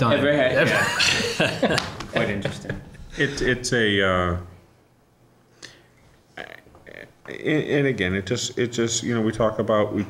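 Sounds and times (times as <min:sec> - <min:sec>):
brief breath: 0:05.5 - 0:06.0
faint throaty vocal sound: 0:05.7 - 0:07.2.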